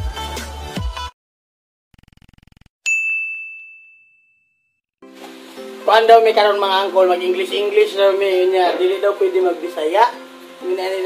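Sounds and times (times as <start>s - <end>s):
bright bell ding: 2.9s - 4.7s.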